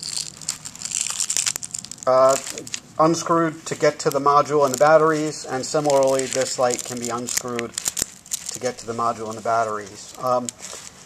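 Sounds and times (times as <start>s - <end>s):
fabric rustling: 0.0s - 11.0s.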